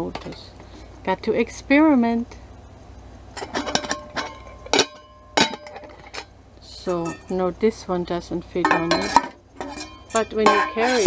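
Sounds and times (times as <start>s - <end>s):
metal cookware clinking: 3.4s - 7.6s, 8.5s - 11.0s.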